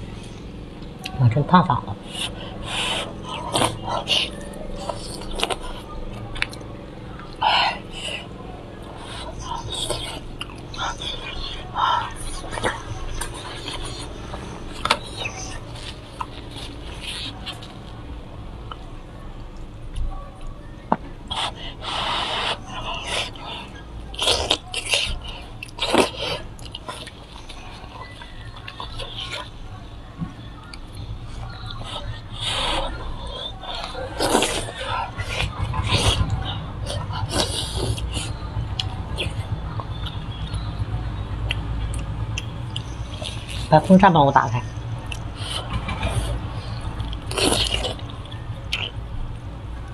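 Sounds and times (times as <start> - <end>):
steady low hum: 0.0 - 49.9
wet chewing and lip smacking: 2.0 - 43.9, 44.6 - 49.5.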